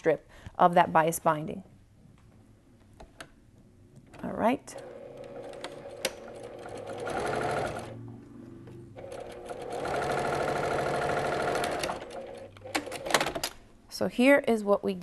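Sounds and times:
sewing machine stitching: 0:04.7 - 0:08.0, 0:09.0 - 0:13.4.

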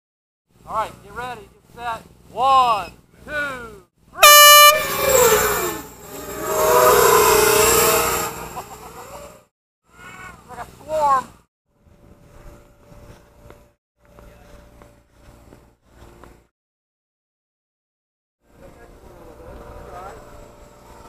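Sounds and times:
horn blast: 0:04.2 - 0:05.4
quadcopter motors whining: 0:04.7 - 0:09.4.

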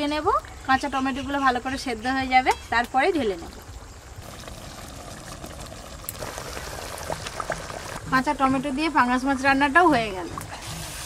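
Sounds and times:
curry bubbling and sizzling: 0:02.9 - 0:11.0.

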